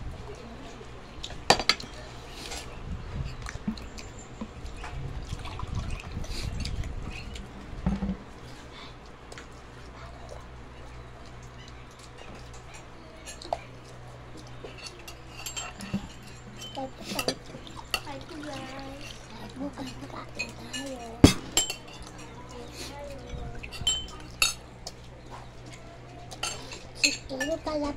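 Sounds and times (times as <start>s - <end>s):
faint voices: 0.0s - 5.6s, 6.2s - 27.9s
children chewing: 0.1s - 27.9s.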